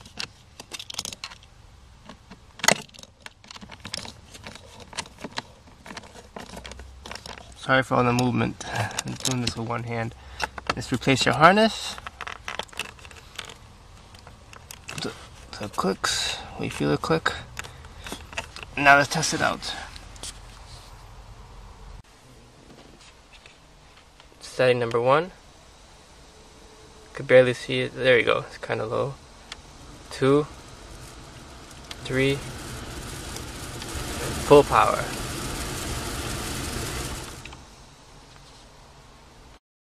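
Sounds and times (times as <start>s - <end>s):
car blower fan rushing air: 12.8s - 20.4s, 25.5s - 38.3s
faint plastic scrapes: 28.6s - 37.7s.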